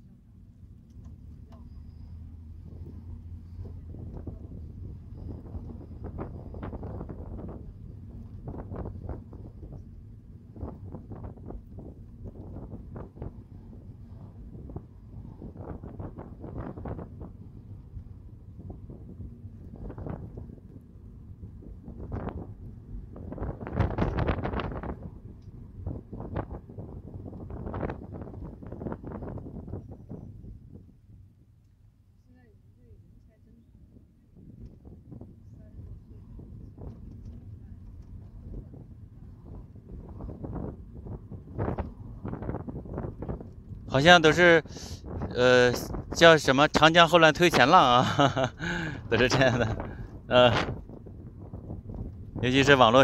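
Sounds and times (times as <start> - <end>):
road and tyre rumble in car: 0.0 - 53.0
wind noise on microphone: 1.7 - 31.6, 32.9 - 53.0.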